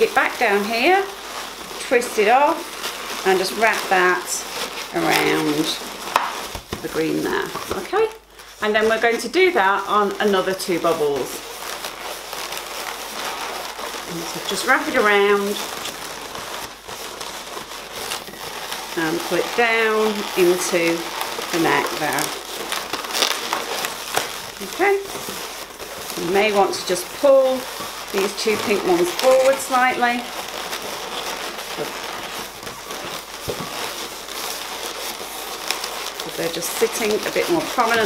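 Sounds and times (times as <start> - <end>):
balloons rubbing together: 0.0 - 38.0
faint crackles: 0.0 - 38.0.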